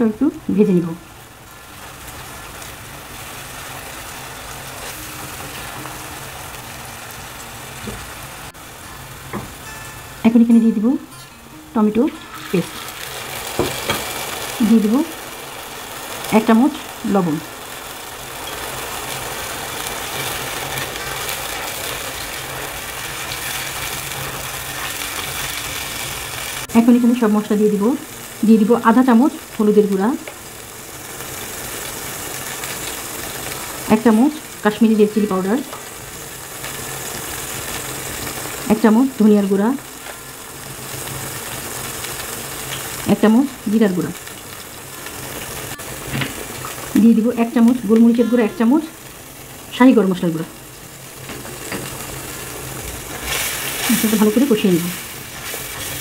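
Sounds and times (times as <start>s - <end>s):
gravy sizzling in a pan: 0.0s - 56.0s.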